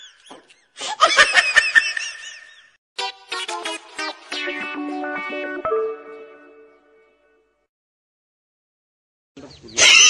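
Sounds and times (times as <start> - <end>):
person laughing: 0.3 - 2.6.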